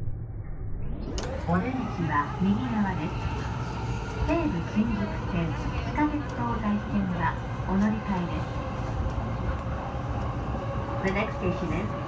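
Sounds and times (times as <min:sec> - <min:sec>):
train wheels rumbling on rails: 0:01.2 - 0:12.0.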